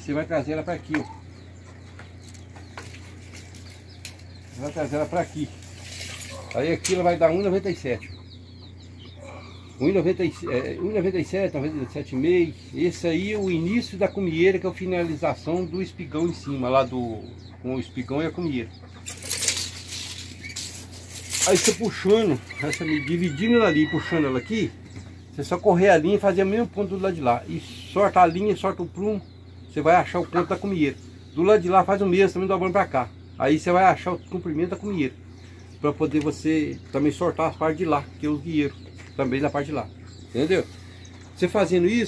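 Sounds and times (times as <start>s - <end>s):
chickens clucking: 0.0s - 42.0s
low steady hum: 0.0s - 42.0s
tape measure scraping on wood: 19.2s - 22.8s.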